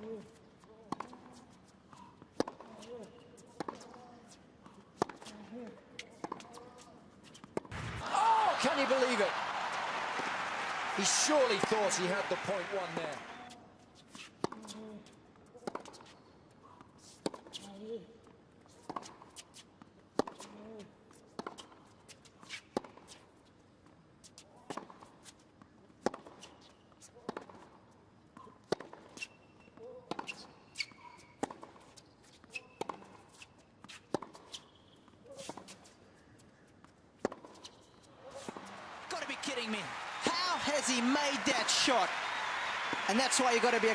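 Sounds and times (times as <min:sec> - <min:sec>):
shoe squeaks: 0:29.1 - 0:36.8, 0:37.6 - 0:38.8.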